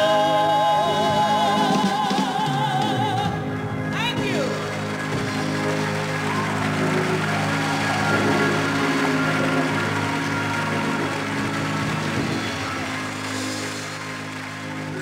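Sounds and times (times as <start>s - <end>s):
gospel band holding a chord: 0.0s - 15.0s.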